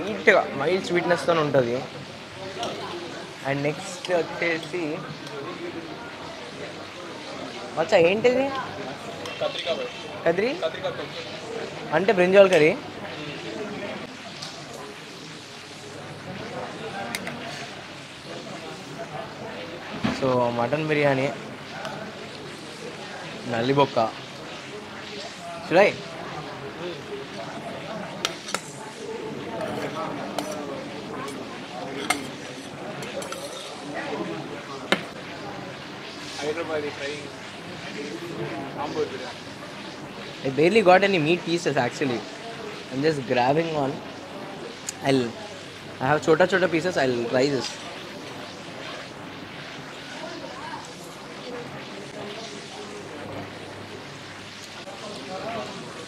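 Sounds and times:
room noise hiss: 0:00.0 - 0:56.0
spoon scraping a metal plate: 0:32.0 - 0:33.9.

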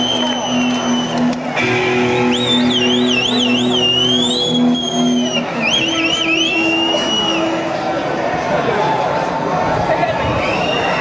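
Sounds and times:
squealing electric guitar notes: 0:00.0 - 0:07.6.

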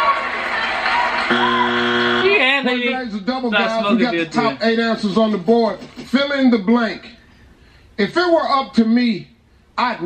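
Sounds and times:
man speaking: 0:02.8 - 0:07.2.

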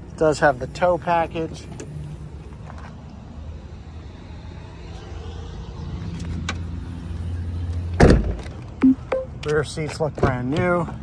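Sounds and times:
car rear gate slamming shut: 0:08.0 - 0:08.5.

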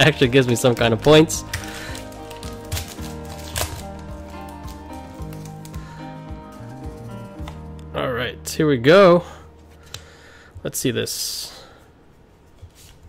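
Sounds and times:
foil wrapper crinkling and tearing: 0:00.0 - 0:07.5
soft background music: 0:00.0 - 0:12.8.

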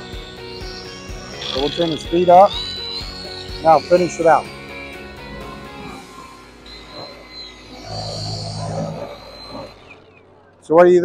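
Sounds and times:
polisher motor hum and whine: 0:00.0 - 0:10.1.

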